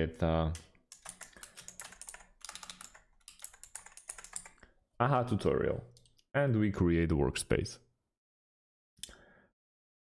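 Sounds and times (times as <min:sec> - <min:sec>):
typing on a computer keyboard: 0:00.8 - 0:04.6.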